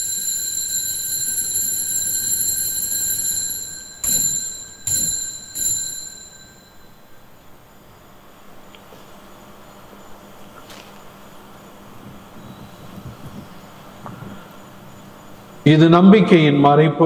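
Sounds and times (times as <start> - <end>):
altar bell ringing: 0.0 - 7.3.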